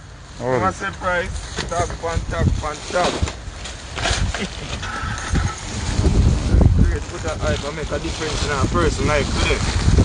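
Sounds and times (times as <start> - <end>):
wind on microphone: 3.4 - 10.0.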